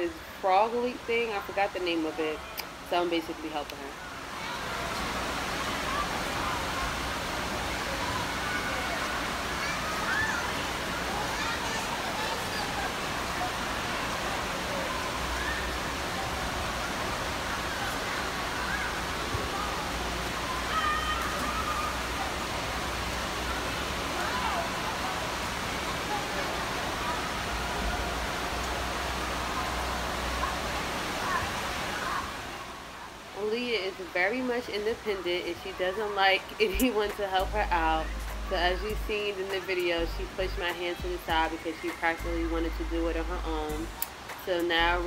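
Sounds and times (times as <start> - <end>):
running and splashing water: 0.0 - 44.4
voices of children and adults: 0.0 - 45.0.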